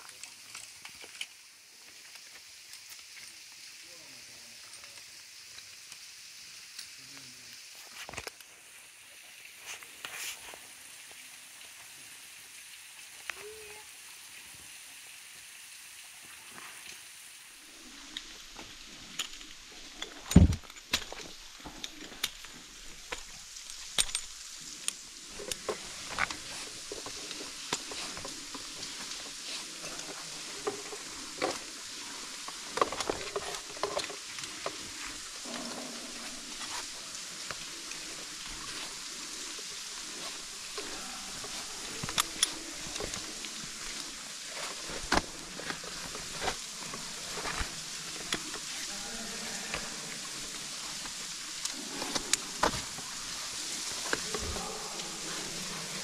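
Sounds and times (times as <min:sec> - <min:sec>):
steady hiss: 0:00.0 - 0:56.0
gloved hands rustling on rope: 0:17.8 - 0:49.0
carabiners clicking and knocking: 0:19.1 - 0:26.4.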